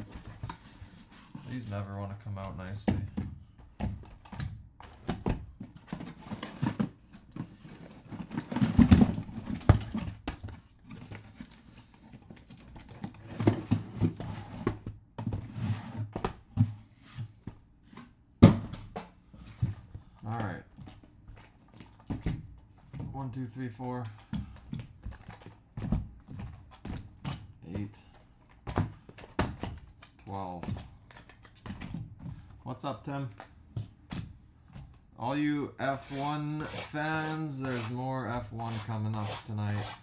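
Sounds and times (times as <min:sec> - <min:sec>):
boxes knocking together: 0:04.9 - 0:11.4, 0:18.4 - 0:19.1.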